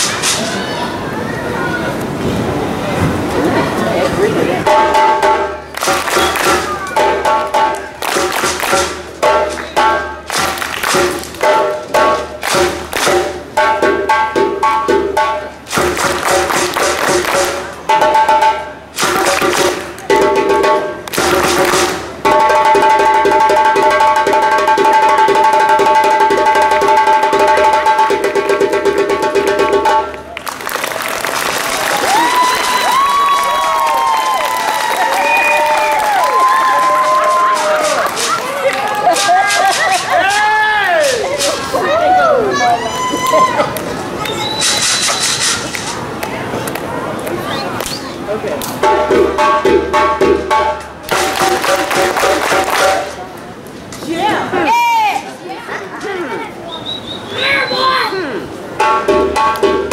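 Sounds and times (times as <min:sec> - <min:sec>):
hand drum music: 0:04.6 - 0:30.3, 0:48.8 - 0:53.2, 0:58.8 - 0:59.9
crowd cheering and whistling: 0:05.7 - 0:07.0, 0:30.2 - 0:45.5, 0:56.6 - 0:58.1.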